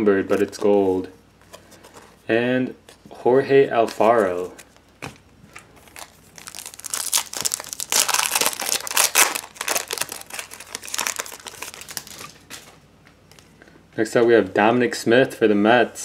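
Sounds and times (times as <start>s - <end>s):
foil wrapper tearing and crinkling: 5.8s - 12.7s.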